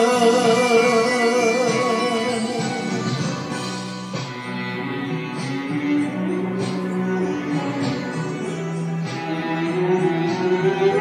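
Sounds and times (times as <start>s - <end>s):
plucked guitar ballad music: 0.0s - 11.0s.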